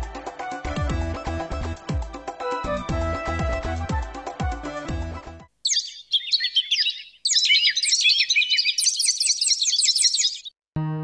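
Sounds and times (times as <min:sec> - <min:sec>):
music: 0:00.0 - 0:05.5, 0:10.8 - 0:11.0
small birds chirping: 0:05.6 - 0:10.6.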